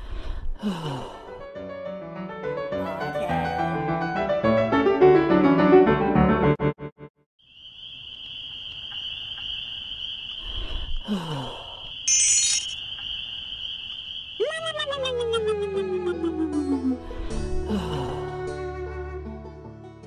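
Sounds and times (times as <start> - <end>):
steady high-pitched tone: 12.1 - 12.8.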